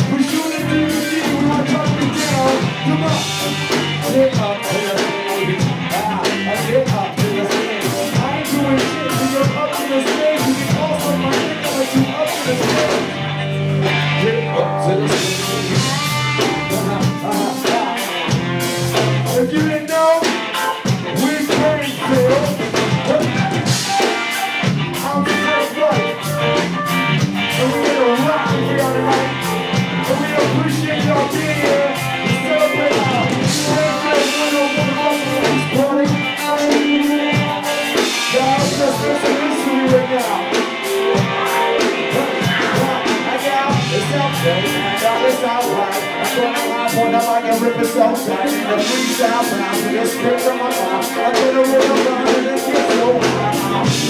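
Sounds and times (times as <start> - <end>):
drum kit beat: 0.0 - 54.0
electric guitar: 0.0 - 54.0
keyboards: 0.0 - 54.0.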